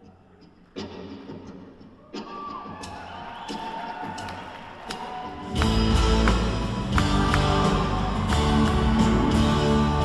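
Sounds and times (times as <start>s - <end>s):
audience noise: 0.6s - 10.0s
rock band playing: 5.4s - 10.0s.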